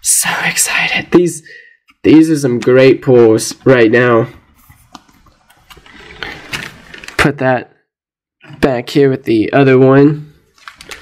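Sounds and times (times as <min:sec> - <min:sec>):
cards rustling: 0:04.6 - 0:07.3, 0:10.5 - 0:11.0.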